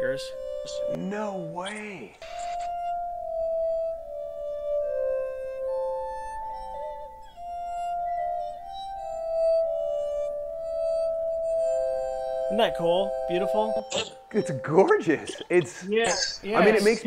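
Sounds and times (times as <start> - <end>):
glass harmonica melody: 0.0 - 17.0.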